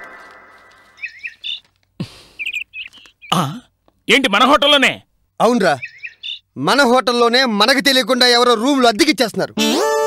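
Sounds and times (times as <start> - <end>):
birds chirping: 0.0 - 3.6, 5.4 - 6.8.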